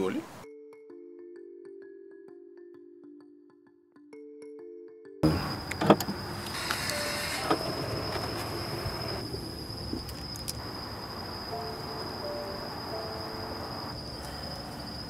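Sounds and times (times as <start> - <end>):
high-pitched insect drone: 5.2 - 15.0.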